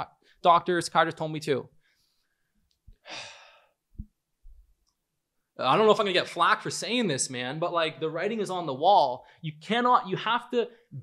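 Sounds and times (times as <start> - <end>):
man sighing heavily: 3.0 - 3.7.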